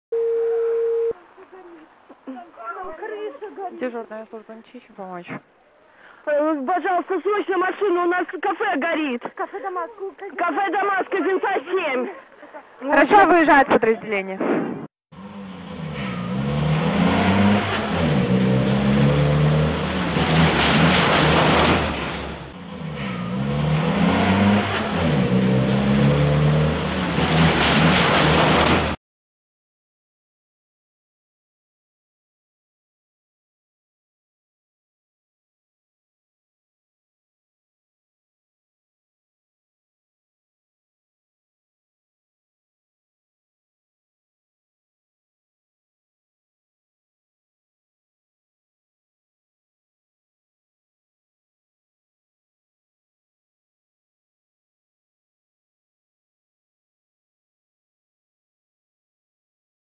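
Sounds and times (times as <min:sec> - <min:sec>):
telephone ringback beep: 0:00.2 - 0:01.2
engine and road noise: 0:01.1 - 0:06.8, 0:15.1 - 0:29.0.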